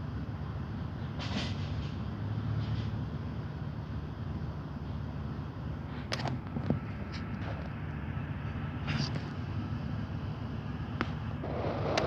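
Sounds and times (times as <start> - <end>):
truck engine rumbling: 0.0 - 12.0.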